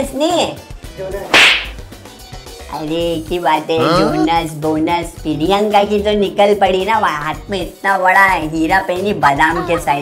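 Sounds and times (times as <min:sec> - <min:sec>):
sharp swish: 0:01.3 - 0:01.8.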